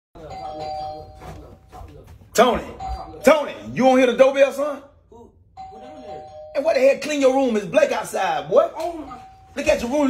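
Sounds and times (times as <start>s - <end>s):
two-tone doorbell chime: 0.2s - 1.5s, 5.6s - 6.9s.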